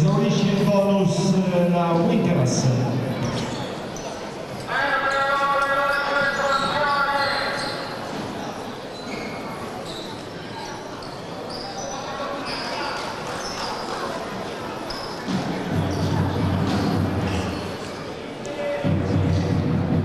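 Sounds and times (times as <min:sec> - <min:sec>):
sneaker squeaks on court: 0:03.2 - 0:04.2, 0:05.9 - 0:13.9, 0:14.9 - 0:16.1.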